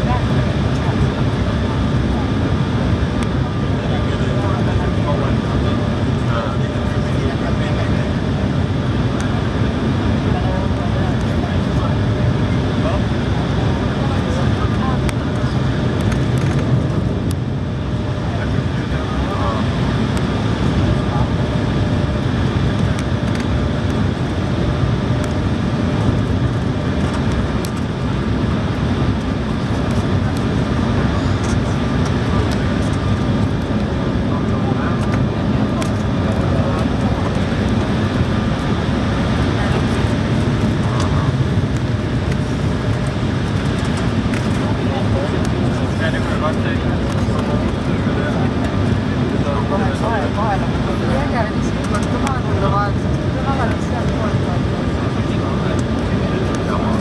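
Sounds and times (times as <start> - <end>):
jet engines rushing: 0.0 - 57.0.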